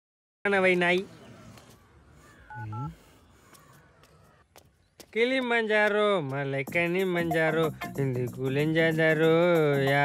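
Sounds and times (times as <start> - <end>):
touch-tone keypad beeps: 2.5 - 2.9.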